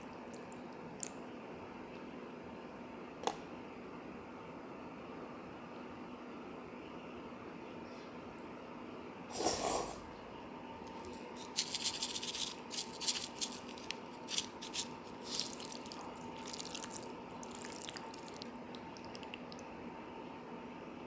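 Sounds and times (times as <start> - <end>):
plastic spoon stirring wet noodles: 10.9 - 18.6.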